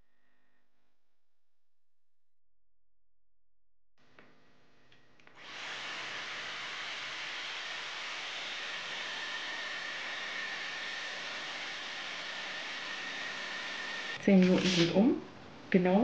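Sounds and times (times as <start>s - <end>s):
hair styler blowing air: 5.3s - 15.1s.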